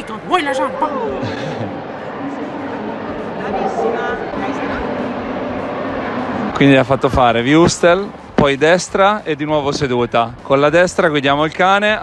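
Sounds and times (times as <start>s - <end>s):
crowd talking in a hall: 0.0s - 12.0s.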